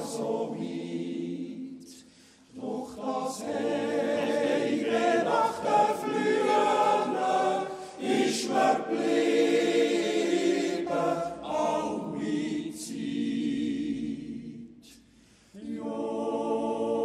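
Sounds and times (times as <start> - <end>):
men's choir yodelling in harmony: 2.6 - 14.3, 15.6 - 17.0.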